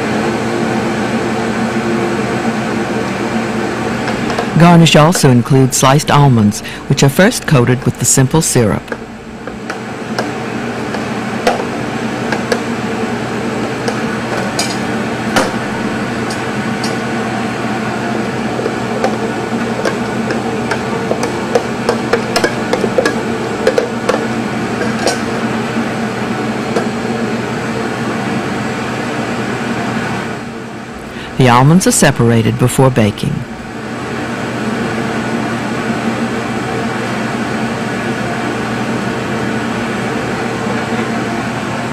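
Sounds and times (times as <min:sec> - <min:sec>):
steady hum: 0:00.0 - 0:41.9.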